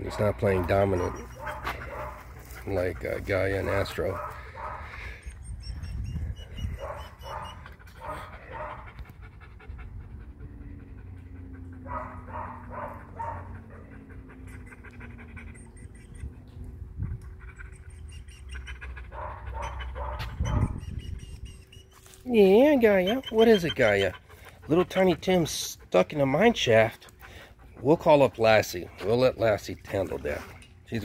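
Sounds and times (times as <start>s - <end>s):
dogs panting: 0.0s - 31.0s.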